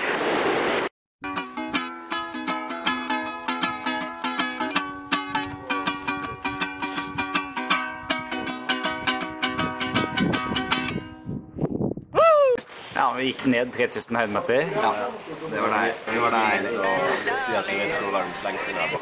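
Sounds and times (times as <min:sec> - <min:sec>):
ukulele picked notes: 0:01.2 - 0:11.5.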